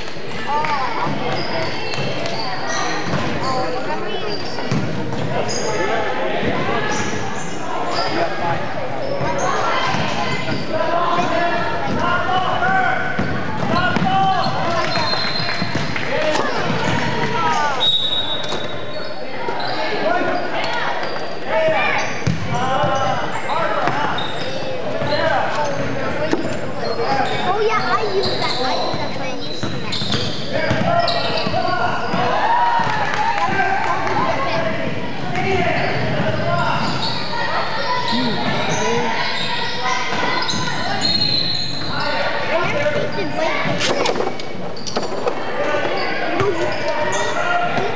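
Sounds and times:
voices talking and calling out: 0:00.0 - 0:47.9
basketball bouncing on hardwood: 0:29.6 - 0:31.6.

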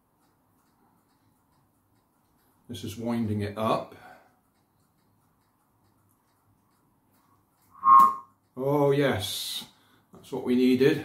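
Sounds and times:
button whirligig whistling: 0:07.8 - 0:08.3.

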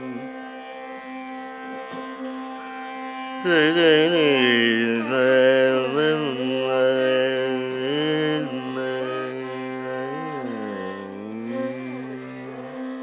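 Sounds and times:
steady tanpura drone: 0:00.0 - 0:13.0
man singing with ornaments: 0:03.4 - 0:12.7.

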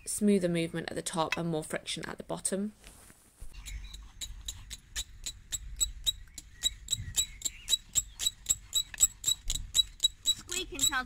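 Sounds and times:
bow drill spindle squeaking: 0:05.8 - 0:11.0.

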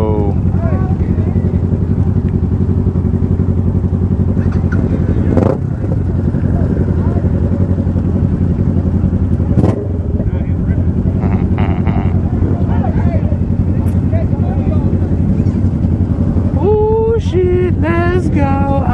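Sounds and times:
motorcycle engine idling: 0:00.0 - 0:18.9.

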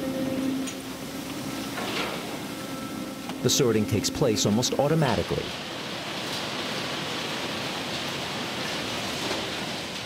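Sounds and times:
conveyor machinery running: 0:00.0 - 0:10.0.

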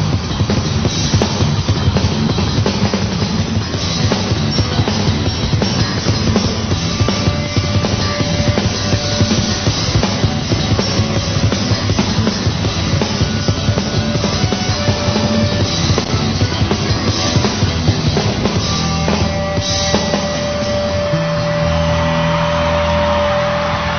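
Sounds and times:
drum kit beat: 0:00.0 - 0:23.9
rock band playing: 0:00.0 - 0:23.9.

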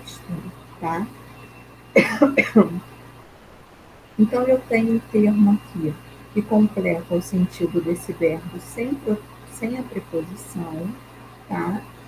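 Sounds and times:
woman coughing: 0:02.0 - 0:02.8.

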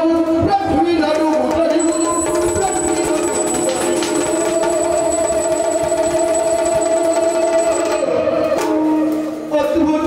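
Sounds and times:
drums: 0:00.0 - 0:10.0.

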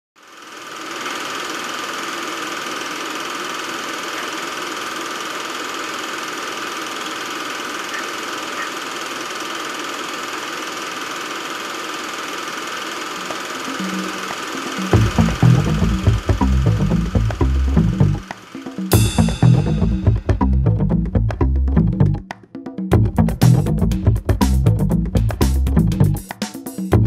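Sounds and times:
steady mechanical whirr: 0:00.2 - 0:19.0.

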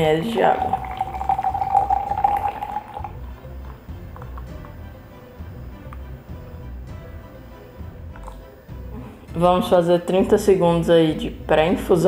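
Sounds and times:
water poured from kettle: 0:00.4 - 0:03.2
music with low beat: 0:00.8 - 0:09.8.

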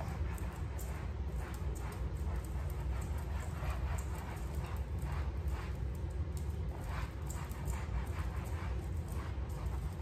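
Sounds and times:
cloth wiping leather sofa: 0:00.0 - 0:06.0
steady low rumble: 0:00.0 - 0:10.0.

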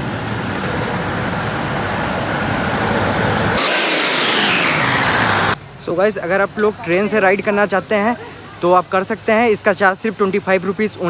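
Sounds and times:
steady rumbling noise: 0:00.0 - 0:06.0
falling whoosh: 0:00.8 - 0:05.6.

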